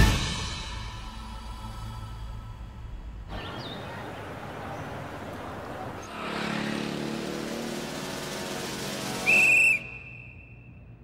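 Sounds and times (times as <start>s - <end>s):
loud high whistle: 8.9s - 10.9s.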